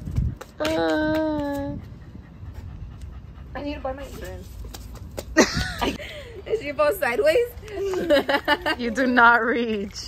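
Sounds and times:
dog panting: 1.7 - 4.8.

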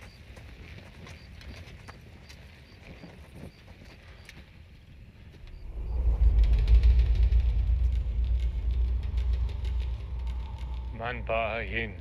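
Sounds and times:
deep low rumble: 5.3 - 12.0.

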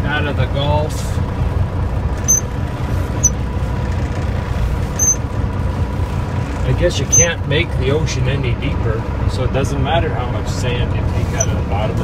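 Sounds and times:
diesel truck engine rumbling: 0.0 - 12.0
brief high squeaks: 2.3 - 2.5, 5.0 - 5.2, 7.1 - 7.3.

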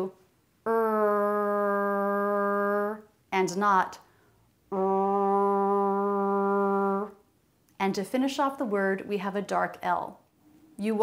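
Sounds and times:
woman holding rrr sound: 0.0 - 3.1, 4.7 - 7.2.

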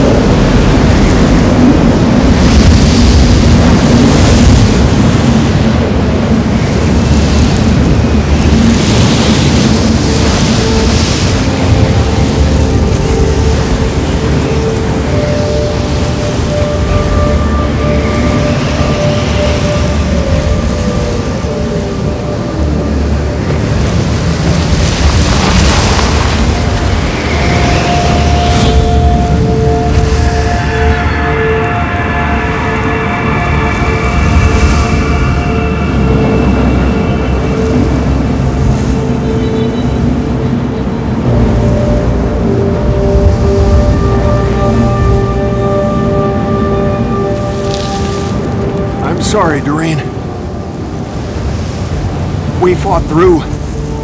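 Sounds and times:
snowstorm wind rumbling: 0.0 - 54.0
sustained drone tones: 0.0 - 54.0.

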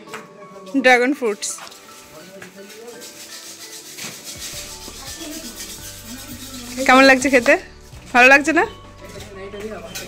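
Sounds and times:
faint music: 0.0 - 10.0
scratchy rubbing: 1.6 - 7.9.

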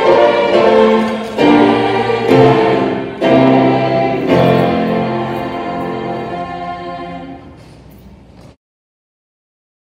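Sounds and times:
instrumental accompaniment: 0.0 - 7.4
choir singing sustained chords: 0.0 - 7.6.

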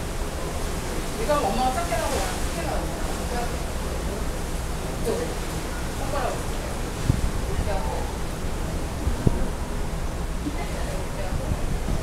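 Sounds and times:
wind and sea noise: 0.0 - 12.0
wind rumble on microphone: 6.0 - 12.0.

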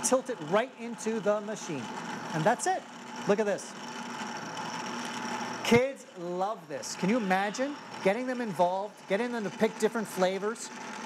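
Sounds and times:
ice cream maker motor running: 0.0 - 11.0
person speaking: 5.7 - 10.8.

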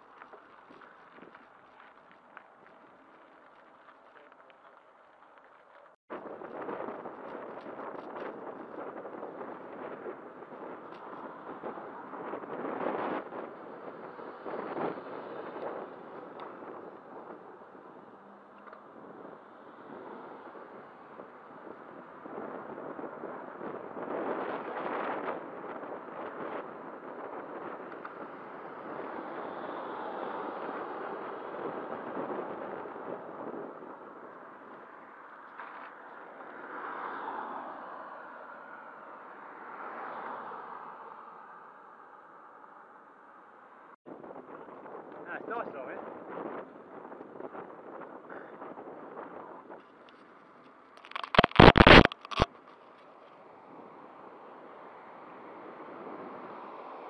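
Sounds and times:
road traffic passing: 0.0 - 57.0
wind rushing over microphone: 6.1 - 35.3, 44.1 - 50.3, 51.0 - 52.5, 53.5 - 57.0.

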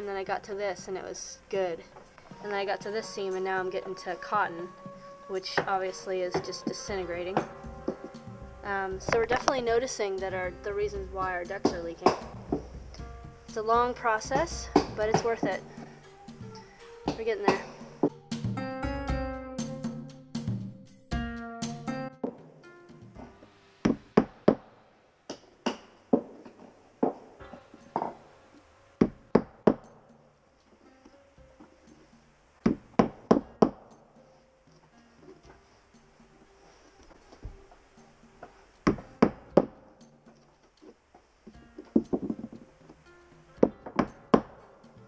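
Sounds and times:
soft plucked-string music: 0.0 - 24.6, 27.2 - 45.0.

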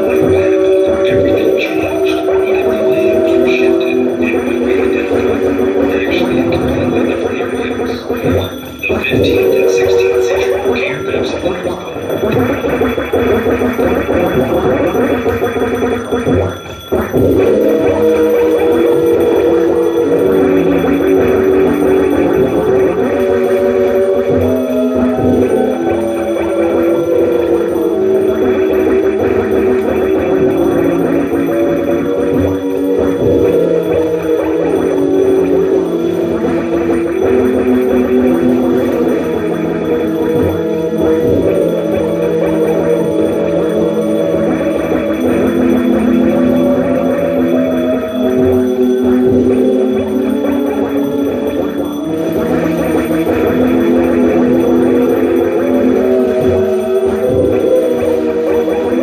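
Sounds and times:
experimental electronic noise: 0.0 - 59.0.

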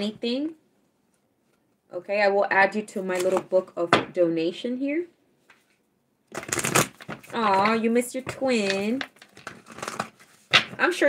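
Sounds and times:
cards being shuffled: 6.3 - 11.0.

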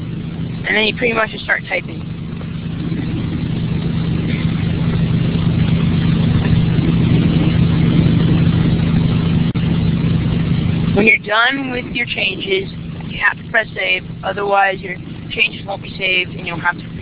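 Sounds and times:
low hum with hiss: 0.0 - 17.0.

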